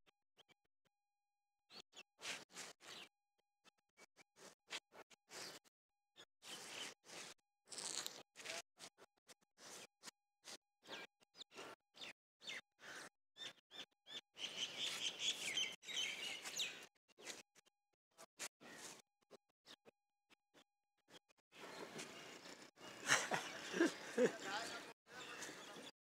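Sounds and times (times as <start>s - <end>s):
birds chirping: 10.8s - 17.4s, 21.6s - 25.9s.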